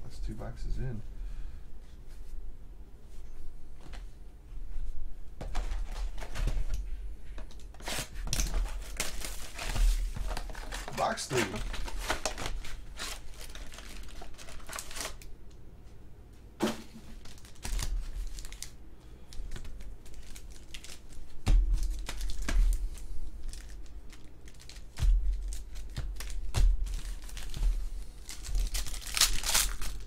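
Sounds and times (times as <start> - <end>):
plastic wrapping and cardboard ripping: 7.8 - 15.3, 17.2 - 18.8, 19.5 - 30.0.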